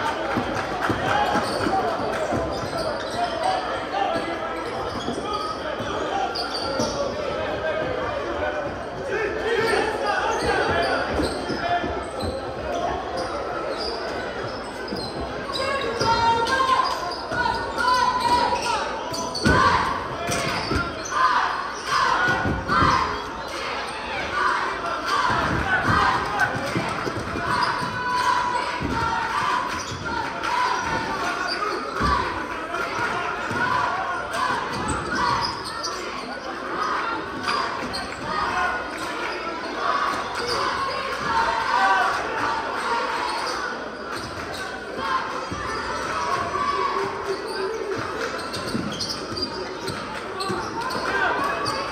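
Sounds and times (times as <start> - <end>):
murmur of crowd voices: 0.0 - 51.9.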